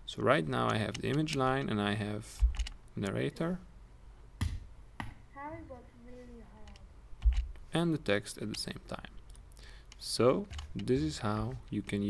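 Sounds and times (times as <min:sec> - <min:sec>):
computer mouse clicks: 0:00.6 - 0:01.8.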